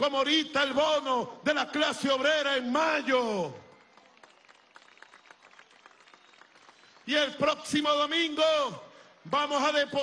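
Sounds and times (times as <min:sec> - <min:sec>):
crowd clapping: 0:03.3 - 0:10.0.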